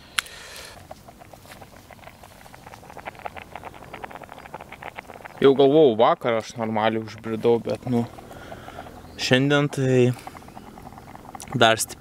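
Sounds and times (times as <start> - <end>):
food bubbling in pot: 0.0 - 12.0.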